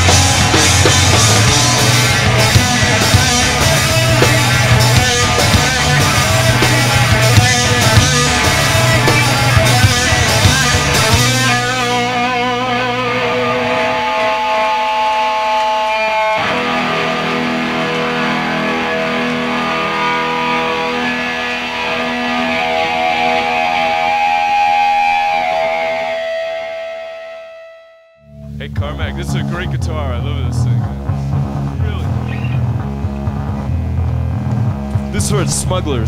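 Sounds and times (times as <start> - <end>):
drums: 0.0 - 27.4, 28.3 - 36.0
bass guitar: 0.0 - 36.0
electric guitar held notes: 0.0 - 36.0.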